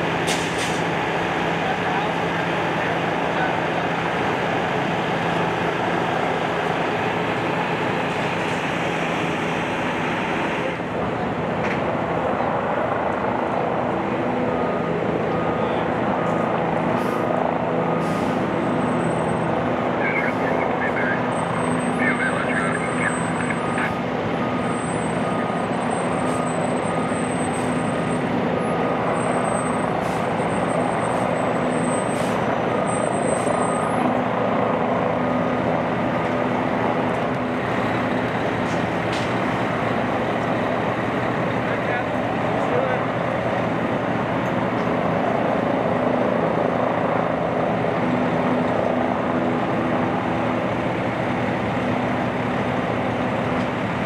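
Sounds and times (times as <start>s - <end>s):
heavy truck engine running: 0.0s - 54.0s.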